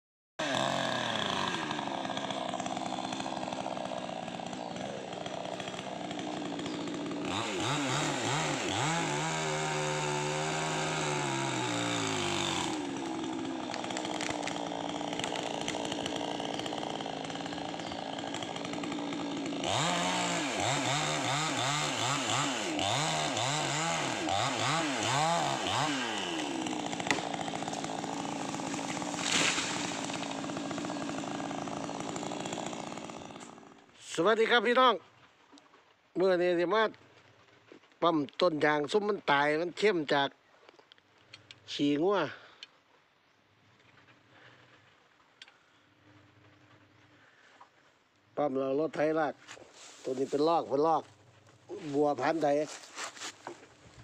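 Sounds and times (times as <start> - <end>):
chainsaw cutting wood: 0.4 - 34.7, 49.0 - 54.0.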